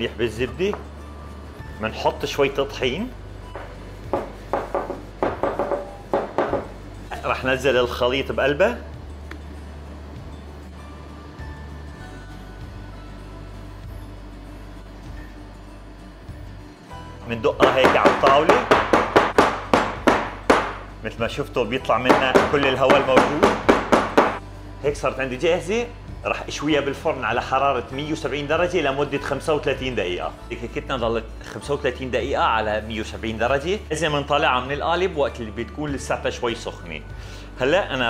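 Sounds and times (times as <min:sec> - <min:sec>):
metal pan knocking on wooden table: 0:03.6 - 0:06.8.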